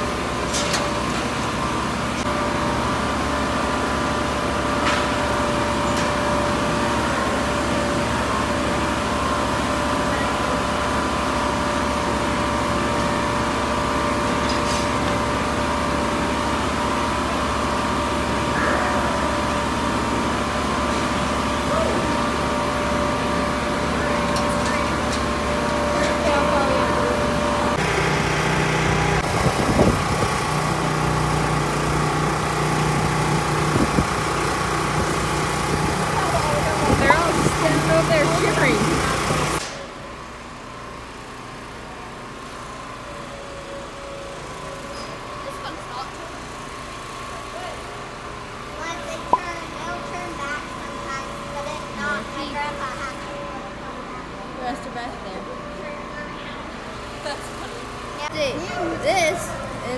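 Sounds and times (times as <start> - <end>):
ventilation fans humming: 0.0 - 59.9.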